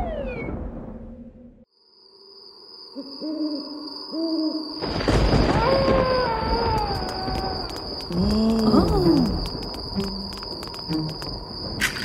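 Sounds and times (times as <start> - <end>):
owl hoots: 3.0 - 4.7.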